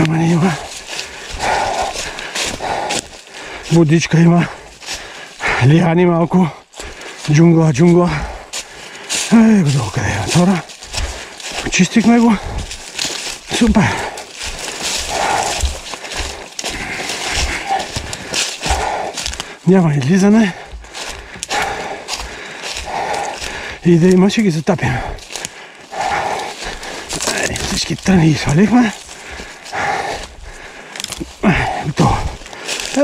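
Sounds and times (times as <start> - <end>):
footsteps crunching through dry leaves: 0.0 - 6.0, 6.6 - 33.0
person breathing hard: 0.0 - 24.2, 24.8 - 33.0
dull thuds of feet landing: 8.0 - 19.4.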